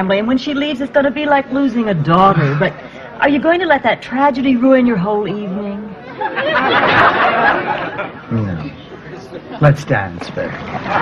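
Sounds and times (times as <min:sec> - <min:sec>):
studio audience laughing: 0:06.0 - 0:09.7, 0:10.6 - 0:11.0.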